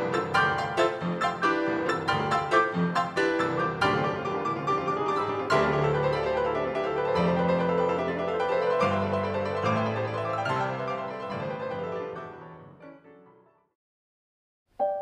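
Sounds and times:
pianos playing staccato chords: 0:00.0 - 0:11.8
held piano bass notes: 0:00.0 - 0:12.0.

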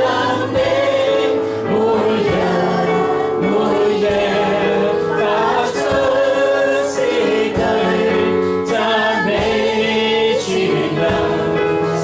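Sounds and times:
electronic keyboard chords: 0:00.0 - 0:12.0
person singing worship song: 0:00.0 - 0:12.0.

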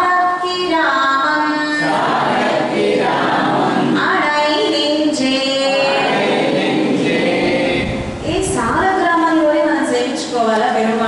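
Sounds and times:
woman singing into a microphone: 0:00.0 - 0:01.8, 0:04.0 - 0:05.9
woman speaking: 0:08.2 - 0:11.0.

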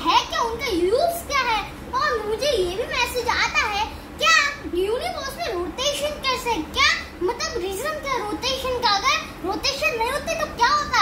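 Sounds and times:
young boy talking: 0:00.0 - 0:11.0.

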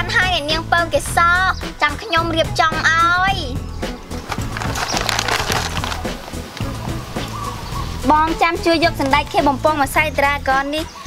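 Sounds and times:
background music: 0:00.0 - 0:11.0
dense irregular crackling: 0:04.2 - 0:06.9.

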